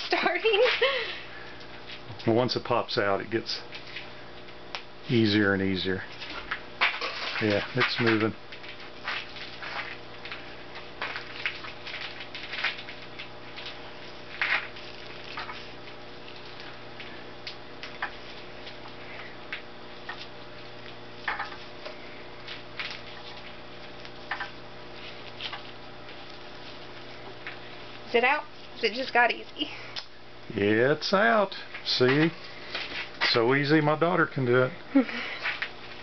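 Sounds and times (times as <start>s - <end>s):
steady hum: 0.0s - 36.0s.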